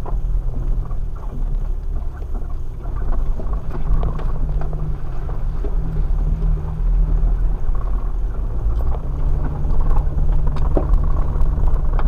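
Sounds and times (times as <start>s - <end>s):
off-road vehicle engine drone: 0.0s - 12.0s.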